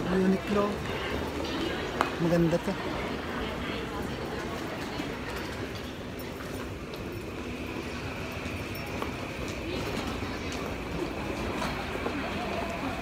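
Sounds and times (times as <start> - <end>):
crowd rumble: 0.0 - 13.0.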